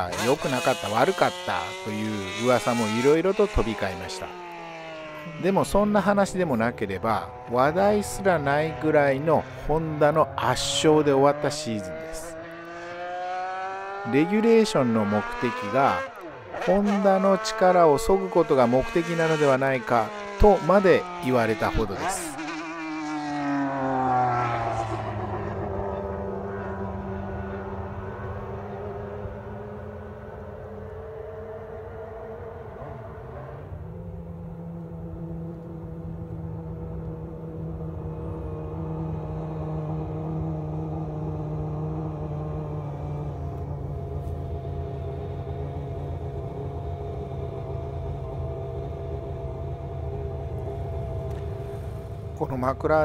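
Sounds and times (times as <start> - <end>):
racing car engine: 0.0 - 53.0.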